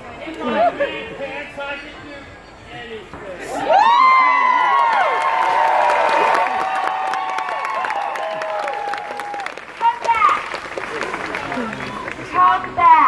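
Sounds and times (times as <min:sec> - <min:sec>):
crowd cheering and whooping: 0:03.5 - 0:10.1
crowd clapping: 0:04.1 - 0:13.0.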